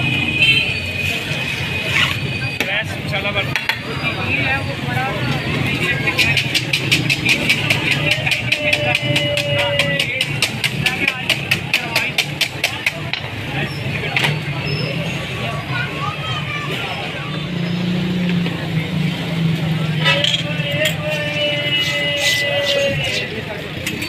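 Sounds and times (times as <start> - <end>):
murmur of voices: 0.0 - 24.0
street noise: 0.0 - 24.0.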